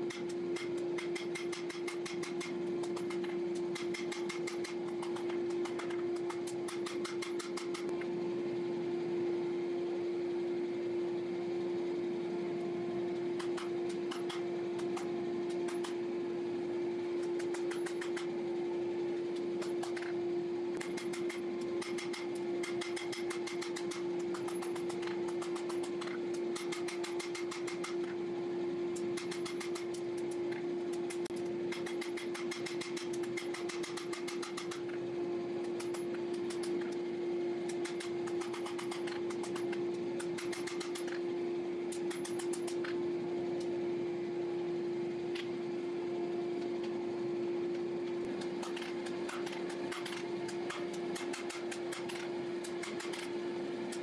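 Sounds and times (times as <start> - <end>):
steady machine hum: 0.0 - 54.0.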